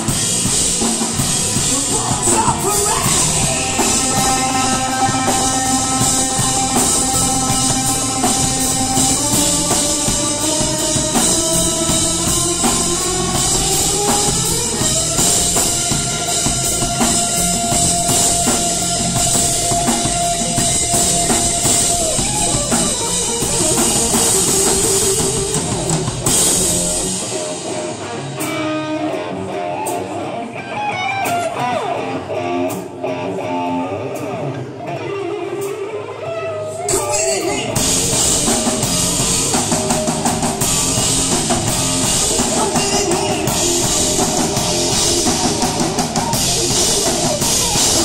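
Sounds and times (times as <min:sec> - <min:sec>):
deep bass: 0:00.0 - 0:27.1, 0:37.7 - 0:48.0
drum kit: 0:00.0 - 0:36.0, 0:36.8 - 0:48.0
electric guitar: 0:00.0 - 0:48.0.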